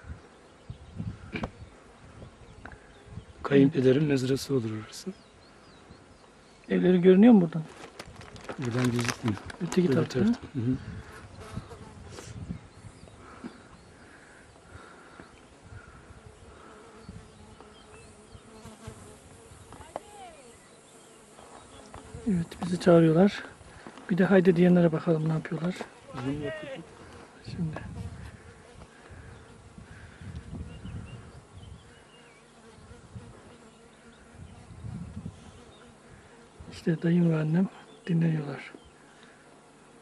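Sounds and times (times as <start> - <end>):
insects buzzing: 0.0 - 40.0.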